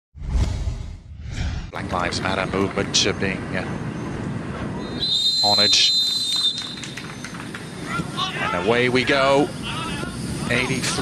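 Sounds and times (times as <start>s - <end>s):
referee's whistle blast: 4.8s - 7.0s.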